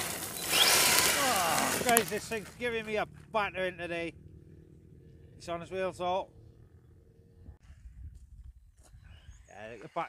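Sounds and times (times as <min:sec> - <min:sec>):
rc truck motor whining: 0:00.0 - 0:02.2
tyres scrabbling on gravel: 0:00.0 - 0:03.2.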